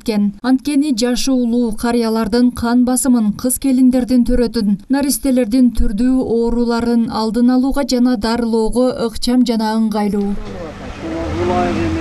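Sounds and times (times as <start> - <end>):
vehicle engine running: 10.4 - 12.0.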